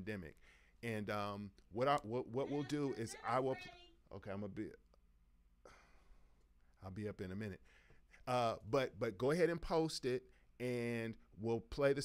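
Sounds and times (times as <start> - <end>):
man speaking: 0.0 - 4.9, 6.8 - 7.6, 8.2 - 12.0
man breathing at microphone: 0.4 - 0.8, 7.6 - 8.2.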